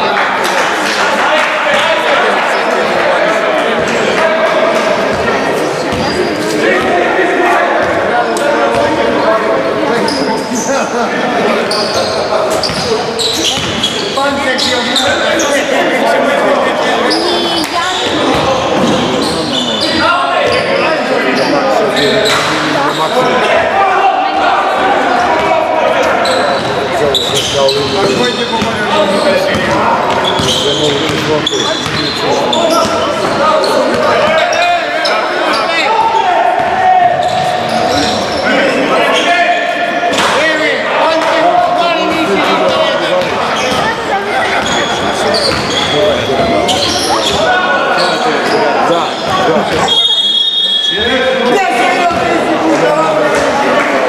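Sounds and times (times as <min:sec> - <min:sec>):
voices echoing in hall: 0:00.0 - 0:54.0.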